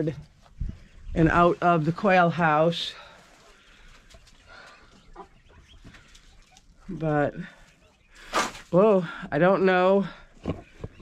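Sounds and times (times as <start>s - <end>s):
hens clucking: 1.2s - 11.0s.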